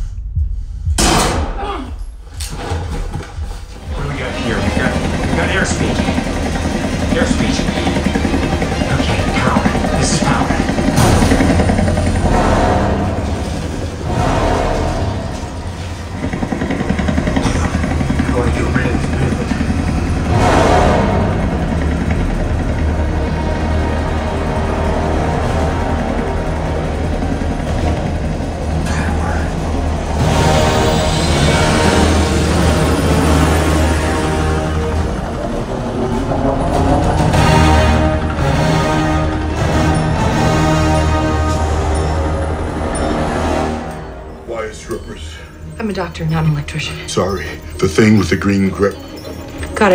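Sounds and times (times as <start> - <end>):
film music score: 0.0 - 49.9
helicopter and engine noise: 3.2 - 49.9
dialogue: 3.7 - 49.9.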